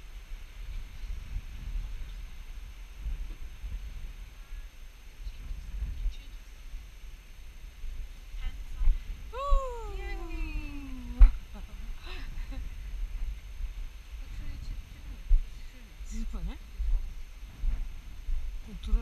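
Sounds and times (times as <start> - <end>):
steady low rumble: 0.0 - 19.0
long falling voice-like call: 9.3 - 11.3.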